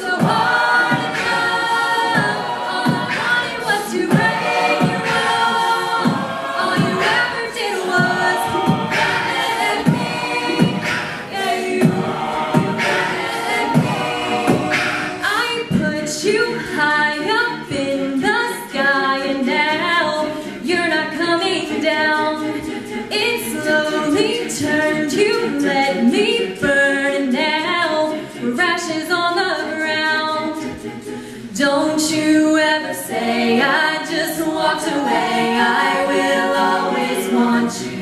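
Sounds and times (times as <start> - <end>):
a cappella group singing: 0.0 - 38.0.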